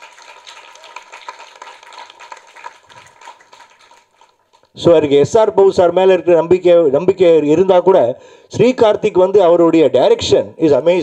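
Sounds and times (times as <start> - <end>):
audience applauding: 0.0 - 4.7.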